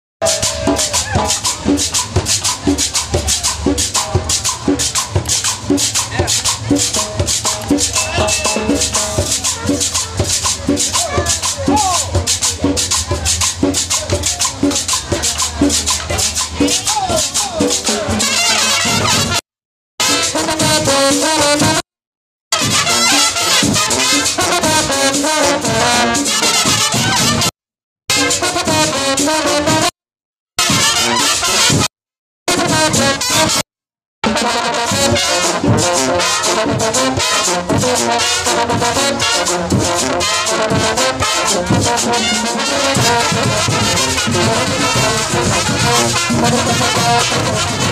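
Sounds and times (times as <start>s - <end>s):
brass band melody: 0.2s - 19.4s, 20.0s - 21.8s, 22.5s - 27.5s, 28.1s - 30.0s, 30.6s - 31.9s, 32.5s - 47.9s
drums and rattles: 0.2s - 19.4s, 20.0s - 21.8s, 22.6s - 27.5s, 28.1s - 29.9s, 30.6s - 31.9s, 32.5s - 47.9s.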